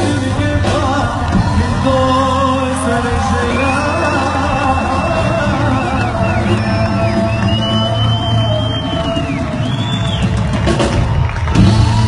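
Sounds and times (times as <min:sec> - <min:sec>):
live band music with bass: 0:00.0 - 0:12.0.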